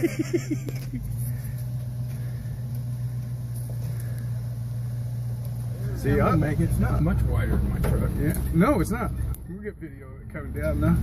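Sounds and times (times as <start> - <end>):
person laughing: 0.0 - 1.1
truck engine idling: 0.0 - 11.0.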